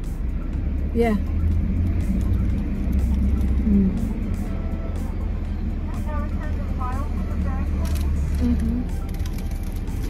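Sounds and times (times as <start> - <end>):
car idling rumble: 0.0 - 10.0.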